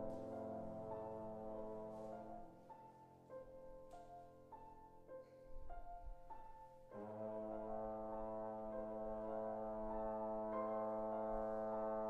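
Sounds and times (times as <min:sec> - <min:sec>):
trombone holding low note: 0:00.0 - 0:02.5, 0:07.0 - 0:12.0
piano playing light notes: 0:00.0 - 0:12.0.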